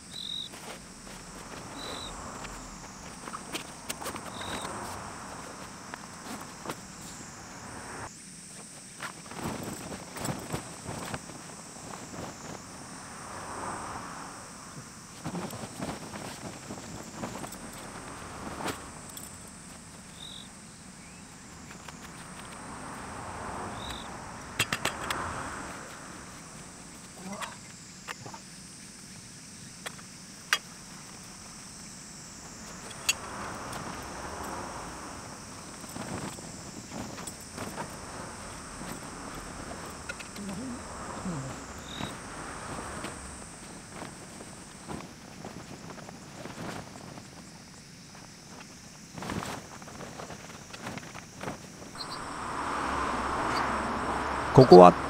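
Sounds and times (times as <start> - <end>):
tent canvas rustling: 0.0 - 13.9, 14.5 - 24.0, 28.2 - 54.9
high insect drone: 0.0 - 55.0.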